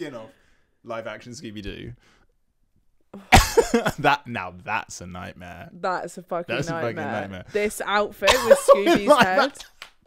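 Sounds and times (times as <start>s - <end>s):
person laughing loudly: 8.3s - 9.6s.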